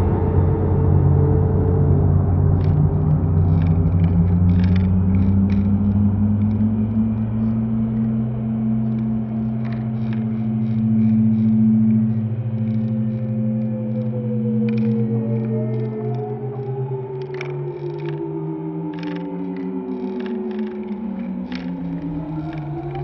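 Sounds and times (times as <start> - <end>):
escalator machine hum: 0.0 - 23.0
escalator steps clicking: 2.6 - 8.2.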